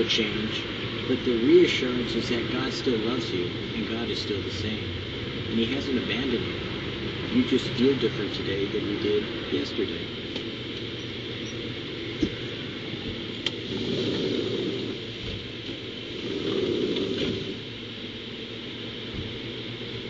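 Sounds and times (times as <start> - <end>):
constant hiss: 0.0 - 20.0
low rumble: 0.7 - 15.5.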